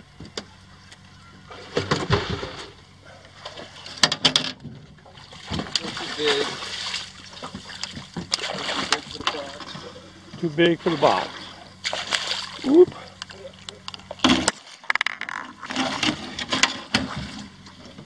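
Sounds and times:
water splashing and sloshing: 0:01.5 - 0:18.0.

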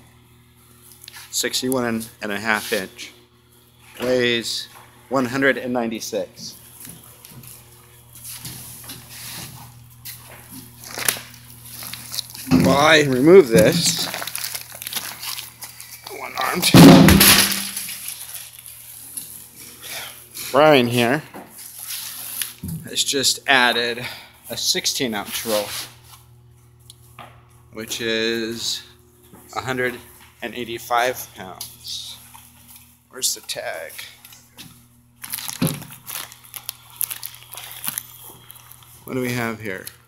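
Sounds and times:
plastic wrap crinkling: 0:10.1 - 0:16.6, 0:17.4 - 0:19.5, 0:35.2 - 0:40.0.

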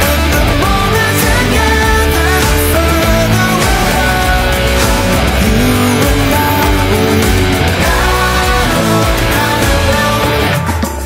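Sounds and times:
band backing with bass and drums: 0:00.0 - 0:11.0
electric guitar lead melody: 0:00.0 - 0:11.0.

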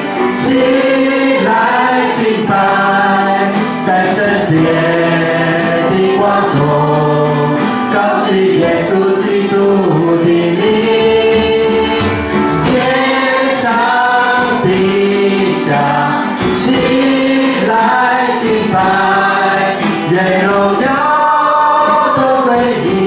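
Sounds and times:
digital piano: 0:00.0 - 0:23.0
women singing together: 0:00.3 - 0:23.0.

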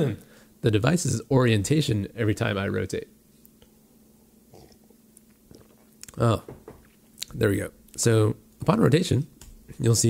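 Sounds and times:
low steady hum: 0:00.0 - 0:10.0
sipping and swallowing: 0:04.5 - 0:06.2.

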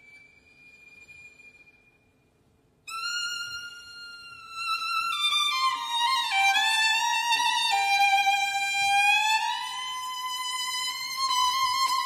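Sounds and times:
solo violin: 0:00.0 - 0:02.2, 0:02.8 - 0:12.0.

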